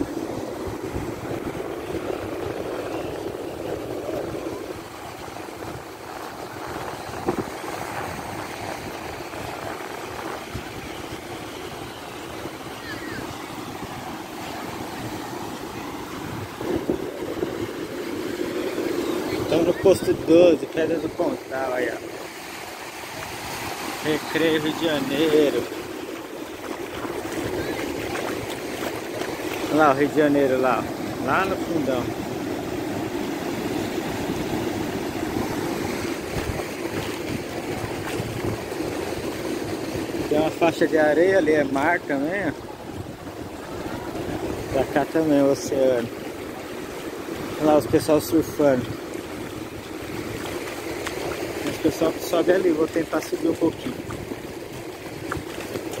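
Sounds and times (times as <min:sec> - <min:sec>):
ocean surf washing in: 0:00.0 - 0:56.0.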